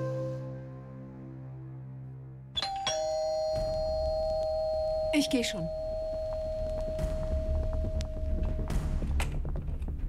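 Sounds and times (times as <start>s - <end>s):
doorbell chime: 2.6s - 8.6s.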